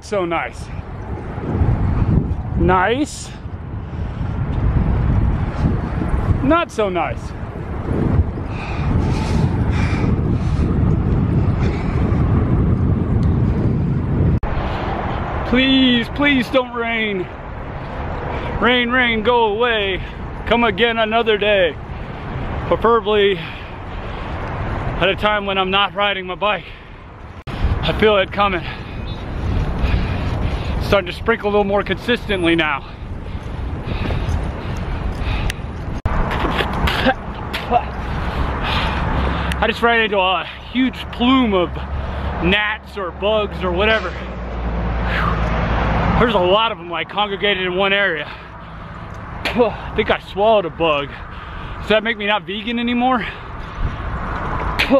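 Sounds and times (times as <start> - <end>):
wind rushing over microphone: 0.0 - 54.9
rider breathing: 3.1 - 6.3, 7.4 - 15.4, 19.9 - 20.5, 21.8 - 22.6, 23.2 - 25.0, 26.5 - 42.5, 43.9 - 46.2, 47.9 - 50.2, 51.0 - 52.2, 52.9 - 54.8.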